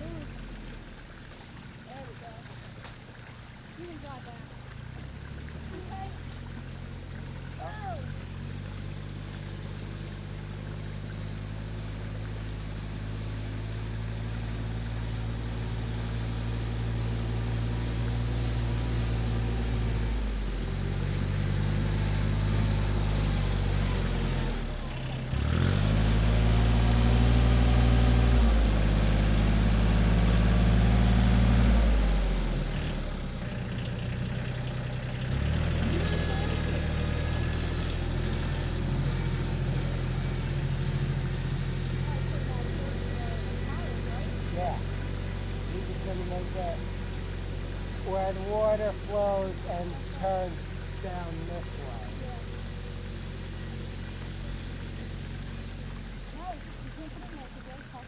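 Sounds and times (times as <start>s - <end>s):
tractor engine running: 0.0s - 58.0s.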